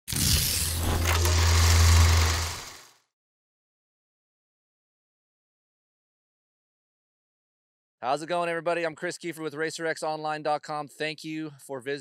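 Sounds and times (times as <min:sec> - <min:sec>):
deep steady hum: 0:00.7 - 0:02.8.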